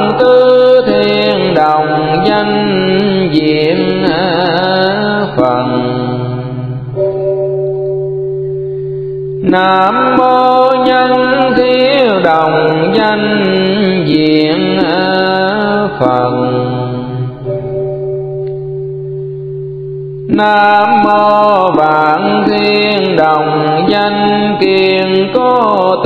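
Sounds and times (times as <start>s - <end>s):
higher held note: 17.0s - 20.4s.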